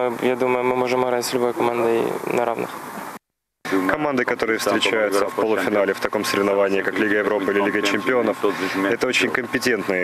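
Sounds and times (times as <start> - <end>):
man speaking: 3.6 - 10.0.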